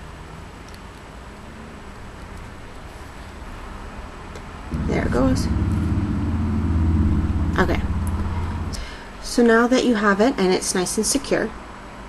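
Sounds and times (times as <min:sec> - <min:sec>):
motor droning with fast pulse: 0:04.7 - 0:09.0.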